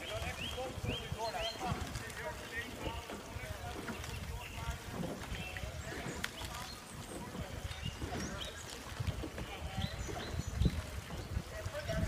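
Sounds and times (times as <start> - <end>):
faint distant voices: 0.0 - 12.0
wind rumble on microphone: 0.0 - 12.0.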